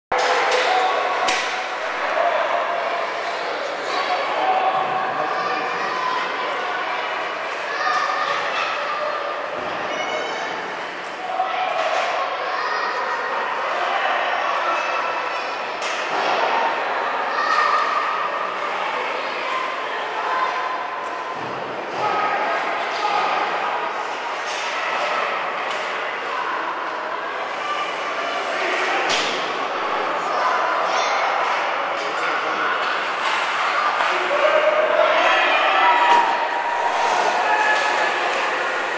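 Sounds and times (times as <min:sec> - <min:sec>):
echoing indistinct voices: 0:00.1 - 0:38.9.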